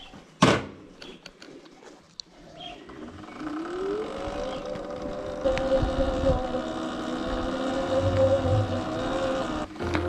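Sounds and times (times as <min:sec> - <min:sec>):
electric motorbike motor whining: 0:02.8 - 0:10.0.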